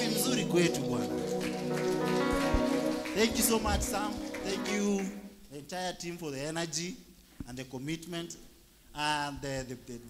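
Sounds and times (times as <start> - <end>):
hands clapping: 0.0 - 5.4
worship band holding a chord: 0.0 - 5.6.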